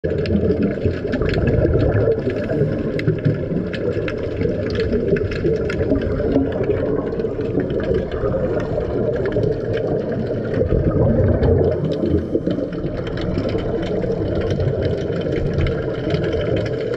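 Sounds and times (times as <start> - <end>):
faint underwater clicks: 0.0 - 16.9
muffled underwater rumble: 0.0 - 16.9.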